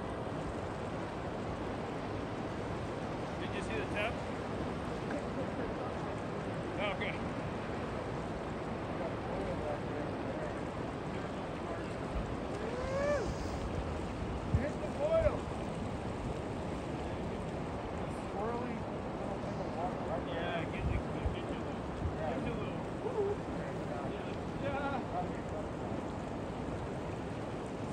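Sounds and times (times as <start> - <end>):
whitewater rushing: 0.0 - 21.0
distant voices calling out: 12.4 - 15.5.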